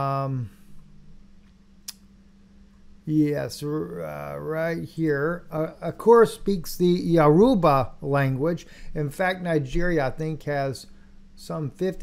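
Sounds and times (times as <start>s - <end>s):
faint low room hum: 0.0s - 12.0s.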